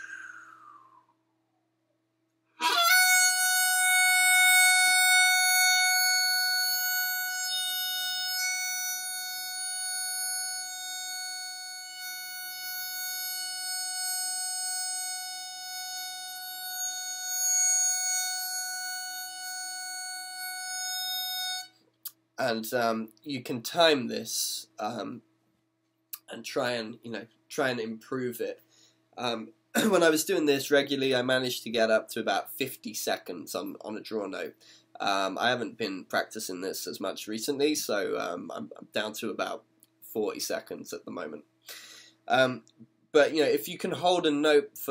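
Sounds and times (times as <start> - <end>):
harmonica holding a single note: 2.6 - 21.8.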